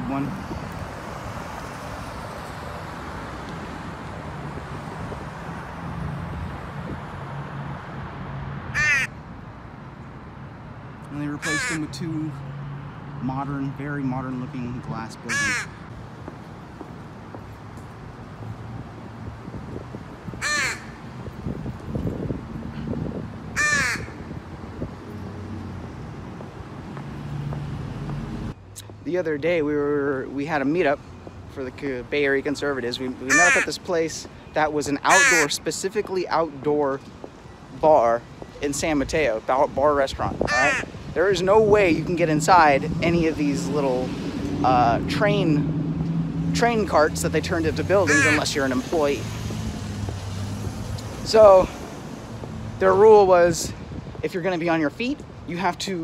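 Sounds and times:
city street noise hum: 0:00.0 - 0:56.0
crow cawing: 0:08.7 - 0:09.2, 0:11.4 - 0:11.9, 0:15.3 - 0:15.9, 0:20.4 - 0:21.0, 0:23.6 - 0:24.3, 0:33.3 - 0:33.8, 0:35.1 - 0:35.6, 0:40.5 - 0:40.9, 0:48.0 - 0:48.5.

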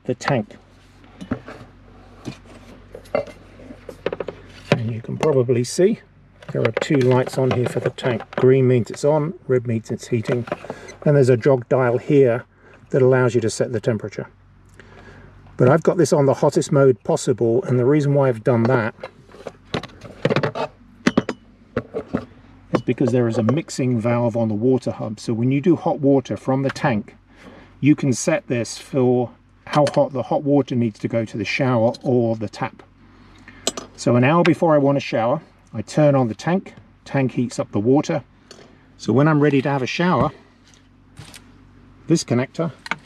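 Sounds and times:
steady low hum: 0:00.0 - 0:43.0
handling clicks and knocks: 0:03.0 - 0:05.5, 0:06.4 - 0:09.1, 0:42.8 - 0:43.0.

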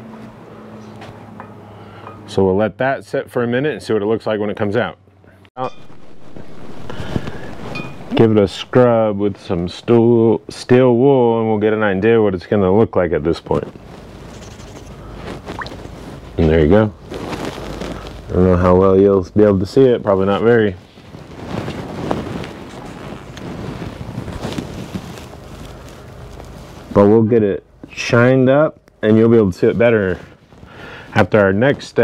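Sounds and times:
low hum: 0:05.6 - 0:12.2
liquid sloshing: 0:15.4 - 0:15.9.

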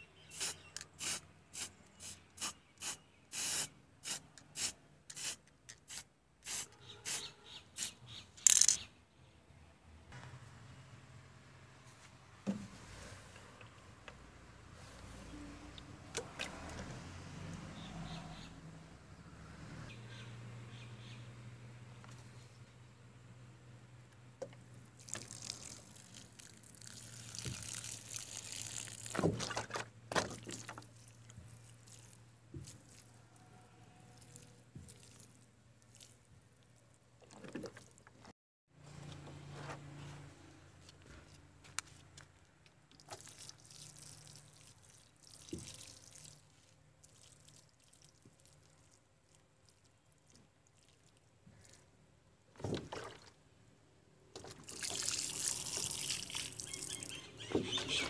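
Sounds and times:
spray can hissing bursts: 0:00.3 - 0:08.0
water pouring onto grass: 0:25.0 - 0:29.7, 0:30.4 - 0:33.2, 0:34.2 - 0:36.3, 0:43.0 - 0:51.8, 0:54.4 - 0:57.1.

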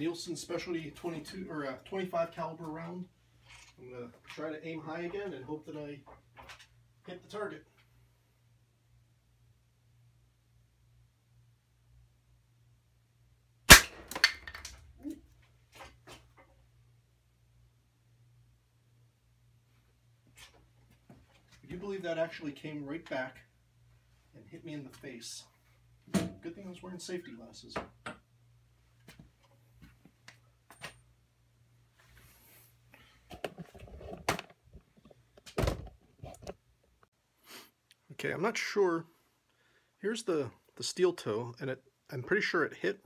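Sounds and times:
air rifle shot: 0:13.7 - 0:14.3.

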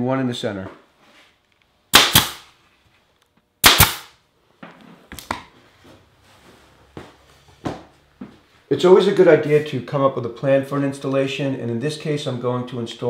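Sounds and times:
pin nailer firing: 0:01.9 - 0:02.5, 0:03.6 - 0:04.2.

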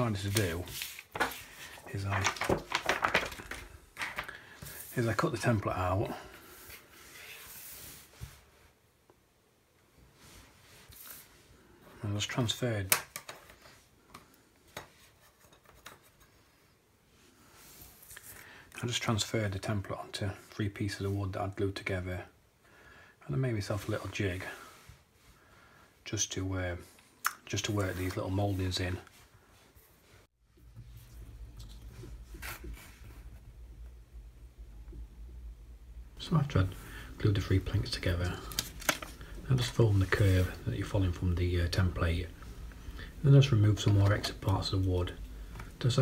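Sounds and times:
paper rustling and scraping: 0:00.0 - 0:05.3, 0:32.0 - 0:33.3, 0:37.4 - 0:41.9
wooden strips clicking and tapping: 0:02.1 - 0:04.4
low steady hum: 0:30.4 - 0:46.0.

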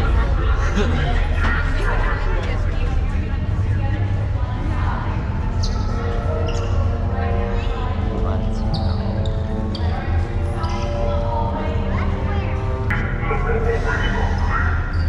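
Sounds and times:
crowd voices: 0:00.0 - 0:15.0.

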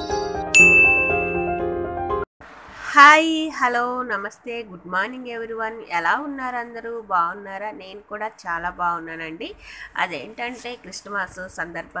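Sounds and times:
intro jingle music: 0:00.0 - 0:02.2
bright chime ding: 0:00.6 - 0:01.6.

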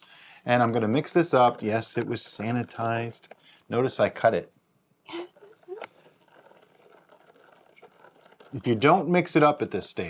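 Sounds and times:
spoon swirling liquid: 0:05.4 - 0:09.0
gritty scraping of sugar granules: 0:05.6 - 0:09.5.

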